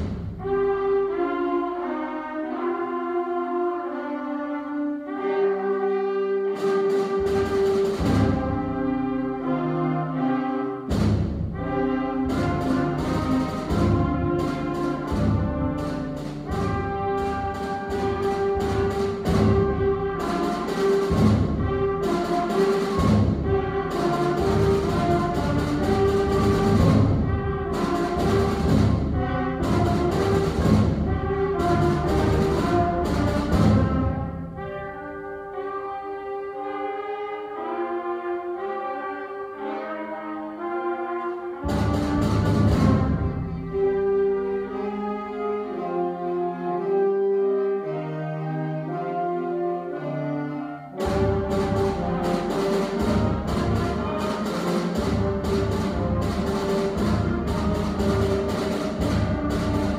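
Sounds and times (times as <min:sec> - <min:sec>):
concert band playing: 0:05.1 - 0:36.0, 0:40.6 - 0:47.0, 0:47.9 - 0:59.9.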